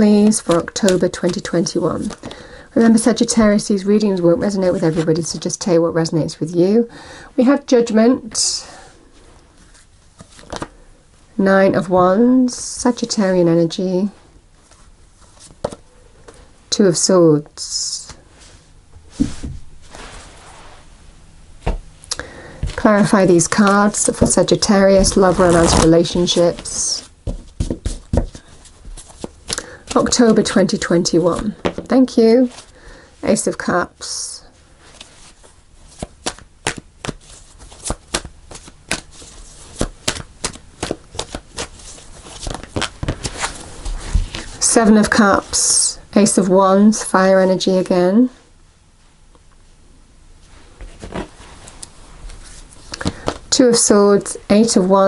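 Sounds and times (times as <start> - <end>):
cards being shuffled by hand: 0.1 - 2.4, 9.6 - 10.8, 14.6 - 16.4, 22.6 - 32.7, 34.9 - 45.5
cards handled on cloth table: 34.9 - 44.6.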